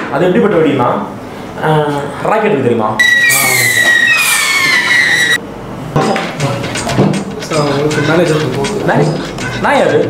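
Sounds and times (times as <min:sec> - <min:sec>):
whistling firework rocket: 0:03.0 - 0:05.4.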